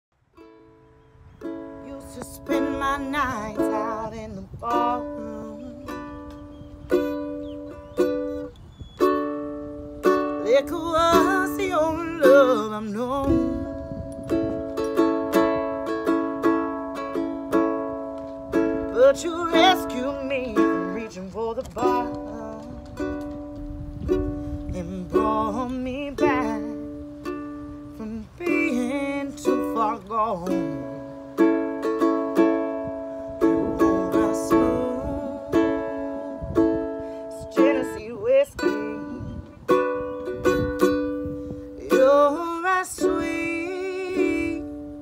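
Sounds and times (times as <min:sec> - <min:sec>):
ukulele strumming chords: 0:00.2 - 0:45.0.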